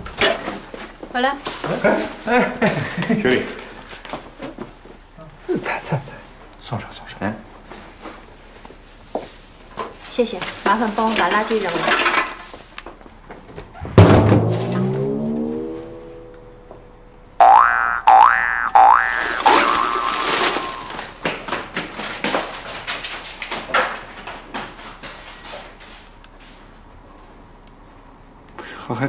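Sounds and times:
door shutting hit: 0:13.8 - 0:16.9
comic music sting: 0:14.4 - 0:17.1
light plucked comic notes: 0:14.4 - 0:20.9
wobbling cartoon boing: 0:14.6 - 0:20.9.

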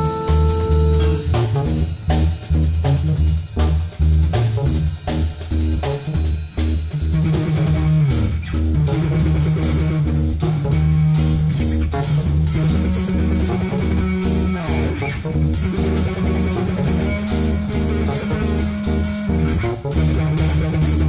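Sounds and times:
keyboards: 0:00.0 - 0:03.2, 0:07.1 - 0:21.0
drum kit and cymbals: 0:00.0 - 0:21.0
electric bass line: 0:00.0 - 0:21.0.

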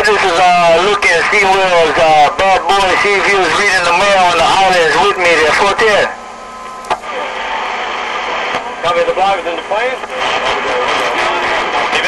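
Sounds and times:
radio static hiss: 0:00.0 - 0:12.0
radio key-up click: 0:06.6 - 0:07.1.

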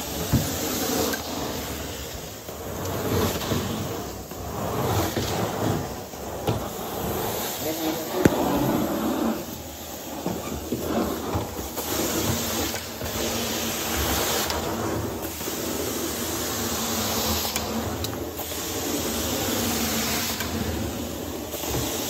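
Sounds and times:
suction and spray hiss: 0:00.0 - 0:22.0.

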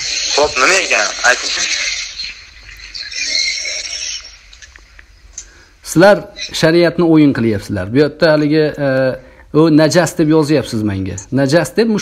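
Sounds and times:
breathy hissing murmur on phone line: 0:00.0 - 0:06.6.

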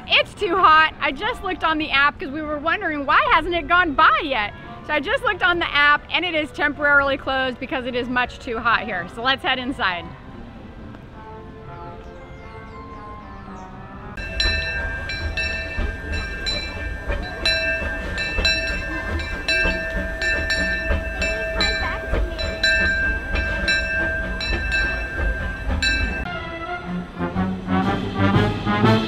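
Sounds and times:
low rumble: 0:14.2 - 0:26.3
steam locomotive bell ringing: 0:14.2 - 0:26.4.

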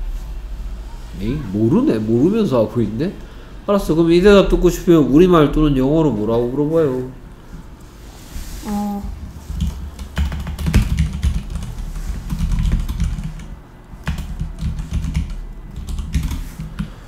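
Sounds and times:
computer keyboard typing: 0:09.5 - 0:16.9.

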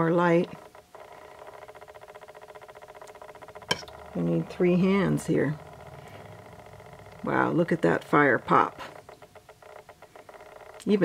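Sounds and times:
rapid buzzing hum: 0:00.0 - 0:11.0.

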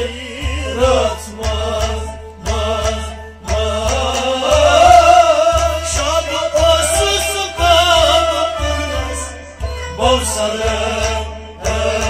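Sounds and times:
instrumental accompaniment: 0:00.0 - 0:12.0
man singing into a microphone: 0:00.0 - 0:12.0
steady low drumbeat: 0:00.0 - 0:12.0.

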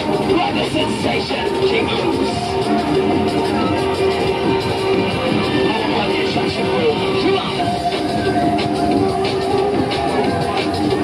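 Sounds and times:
fairground ride rumbling and clattering: 0:00.0 - 0:11.0
loud fairground music: 0:00.0 - 0:11.0.

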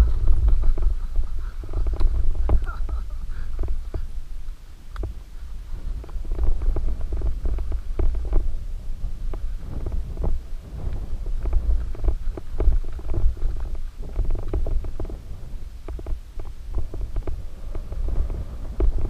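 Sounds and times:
bike rattling over rough trail: 0:00.0 - 0:19.0
bike tyres rumbling: 0:00.0 - 0:19.0
wind: 0:00.0 - 0:19.0.

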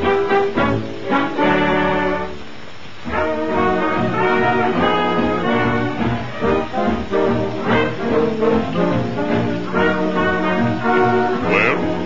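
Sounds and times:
orchestral brass playing tune: 0:00.0 - 0:02.4, 0:03.1 - 0:12.0.

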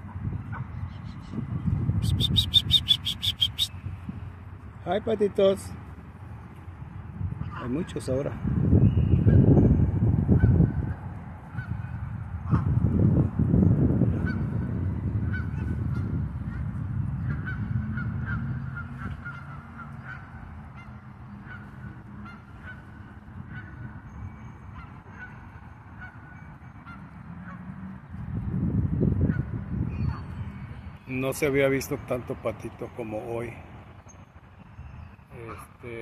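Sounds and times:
geese honking: 0:02.0 - 0:03.7, 0:17.2 - 0:27.8.

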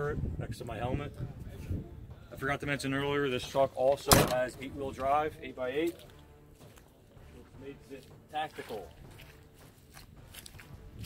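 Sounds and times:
footsteps on wet mud: 0:04.9 - 0:11.0.

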